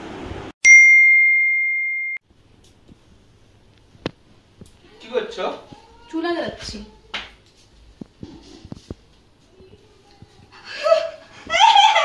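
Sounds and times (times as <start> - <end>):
high bell-like ding: 0.6 - 2.2.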